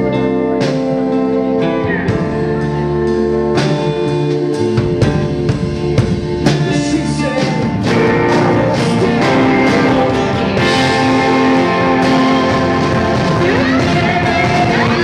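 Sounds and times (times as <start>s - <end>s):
rock band playing: 0.0s - 15.0s
man singing: 6.4s - 15.0s.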